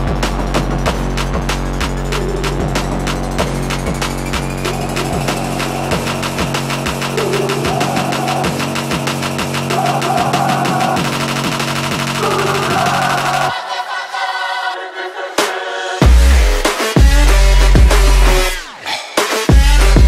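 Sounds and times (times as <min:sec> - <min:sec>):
bass: 0:00.0 - 0:13.5, 0:16.0 - 0:18.7, 0:19.5 - 0:20.0
held synth chords: 0:00.0 - 0:14.7.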